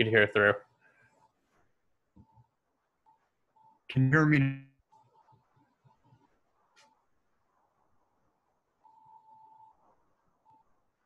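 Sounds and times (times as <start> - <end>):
faint electronic beep: 2.2 - 4.0, 4.6 - 7.1, 8.8 - 11.0.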